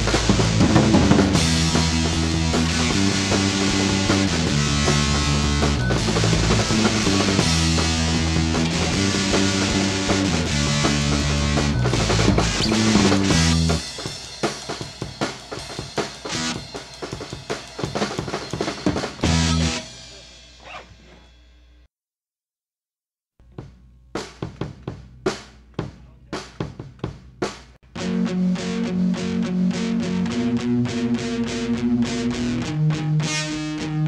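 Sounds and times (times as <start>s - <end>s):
rock band playing: 0.0s - 21.4s, 26.4s - 34.0s
drum kit playing alone: 0.0s - 21.8s, 23.4s - 34.0s.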